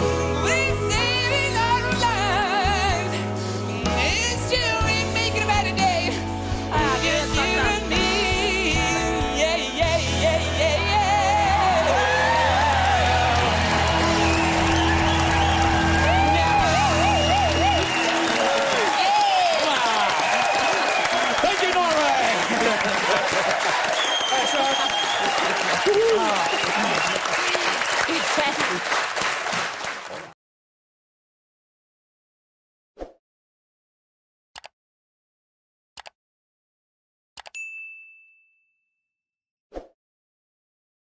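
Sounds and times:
audience applauding and cheering: 11.2 - 30.4
bell-like ding: 37.6 - 39.1.

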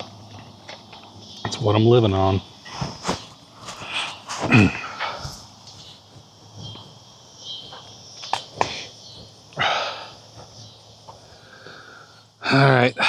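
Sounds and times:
insects chirping: 0.0 - 13.0.

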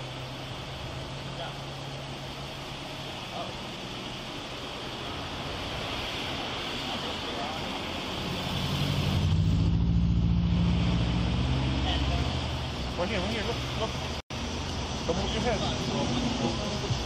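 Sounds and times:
vehicle driving past: 8.1 - 14.0.

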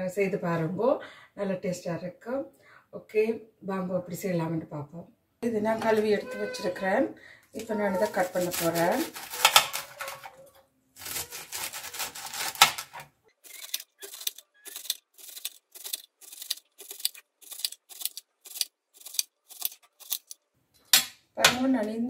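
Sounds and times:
knife chopping on plastic board: 11.1 - 13.0.

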